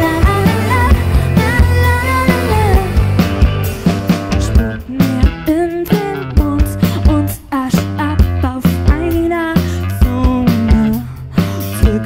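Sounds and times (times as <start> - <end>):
woman singing: 0.0 - 3.4, 4.3 - 12.0
drum beat: 0.0 - 7.3
bass guitar: 0.0 - 12.0
electric guitar: 0.0 - 12.0.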